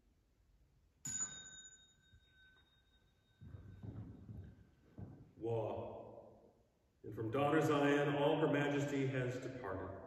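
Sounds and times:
small metal chime ringing: 1.0s - 3.9s.

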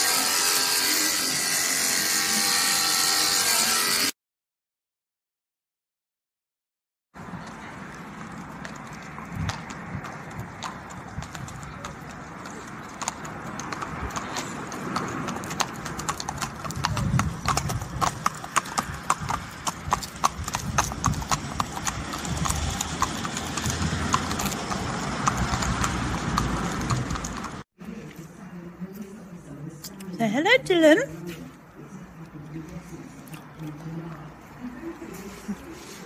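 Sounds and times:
hooves clip-clopping on tarmac: 7.2s - 36.0s.

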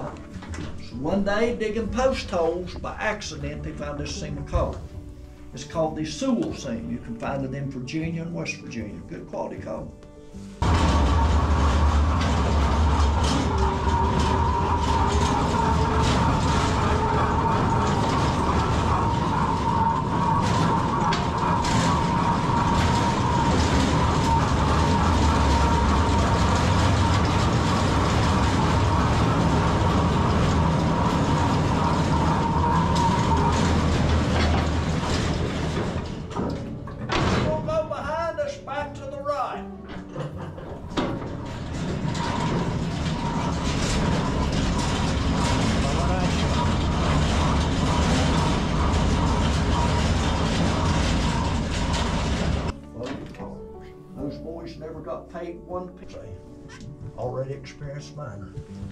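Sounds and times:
rail car rumbling on rails: 0.0s - 9.2s, 10.2s - 53.6s.

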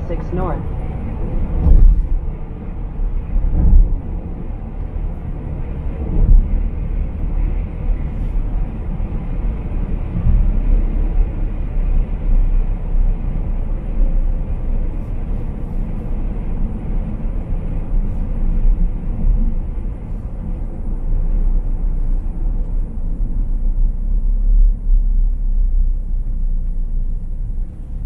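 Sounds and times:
road and tyre rumble in car: 0.0s - 28.0s.

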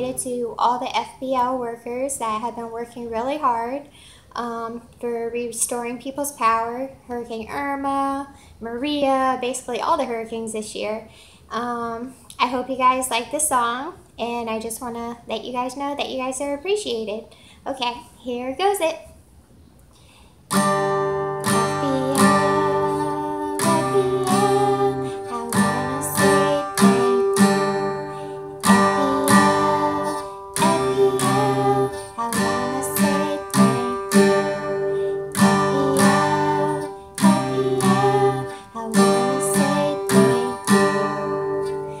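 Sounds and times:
acoustic guitar strumming: 20.5s - 42.0s.

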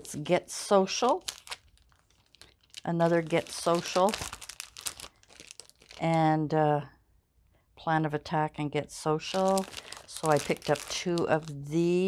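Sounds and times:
plastic packaging crinkling: 0.0s - 6.2s, 9.2s - 12.0s.

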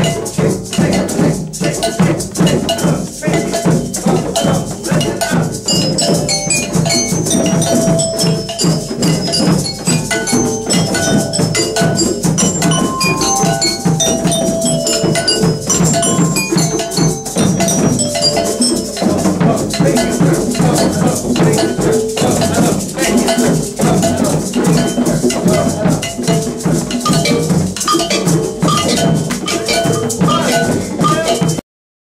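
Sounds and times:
cowbell clanking: 0.0s - 31.6s
hand drums playing a steady beat: 0.0s - 31.6s
metal bells ringing: 0.0s - 31.6s.

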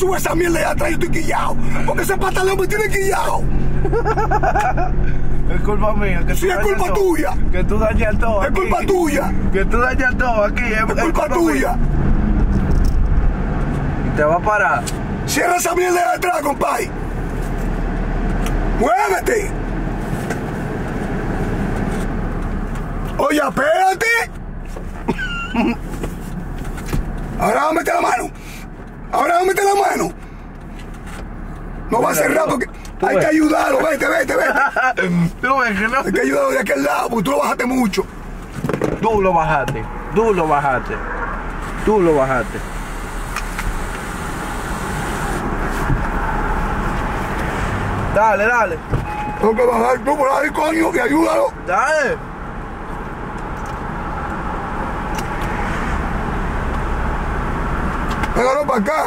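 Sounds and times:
car cabin road and engine noise: 0.0s - 59.0s.

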